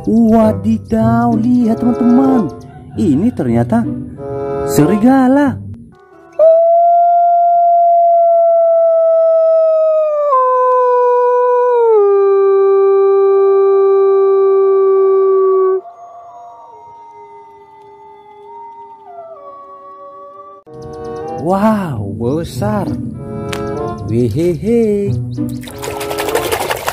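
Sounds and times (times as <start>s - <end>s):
wolf howling: 6.3s - 20.7s.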